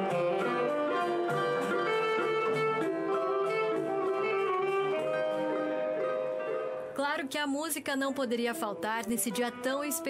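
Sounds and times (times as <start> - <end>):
saxophone melody: 0.0 - 7.0, 8.0 - 10.0.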